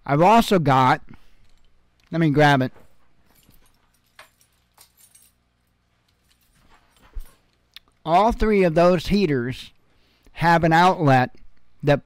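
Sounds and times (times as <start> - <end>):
light clicks and rustles: 1.4 - 8.0.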